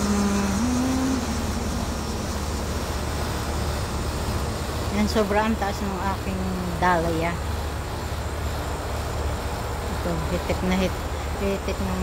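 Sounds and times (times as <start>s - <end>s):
faint hiss: 0.0s - 7.1s
outdoor low rumble: 0.0s - 12.0s.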